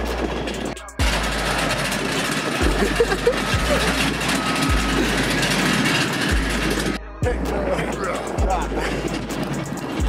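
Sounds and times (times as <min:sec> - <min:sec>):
deep bass background music: 0:00.0 - 0:01.9, 0:02.6 - 0:10.0
aircraft and vehicle engines: 0:00.0 - 0:10.0.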